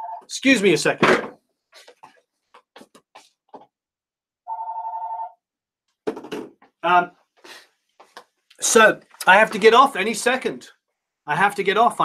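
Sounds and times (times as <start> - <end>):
electronic telephone ringing: 0.0 - 0.3, 4.5 - 5.4.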